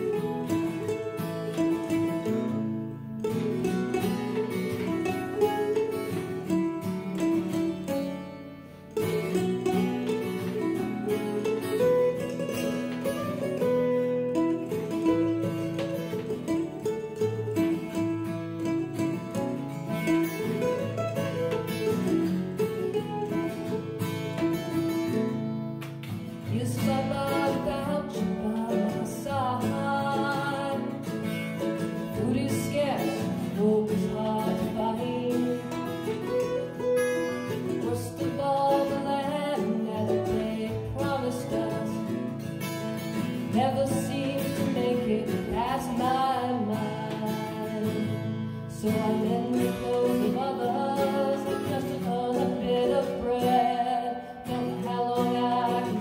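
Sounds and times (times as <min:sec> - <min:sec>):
woman singing: 0:00.0 - 0:08.0, 0:08.9 - 0:20.7, 0:26.3 - 0:56.0
acoustic guitar strumming: 0:00.0 - 0:56.0
mandolin: 0:00.0 - 0:56.0.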